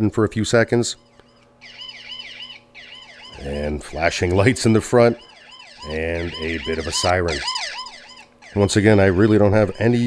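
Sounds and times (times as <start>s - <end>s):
alarm siren yelping: 1.0s - 10.0s.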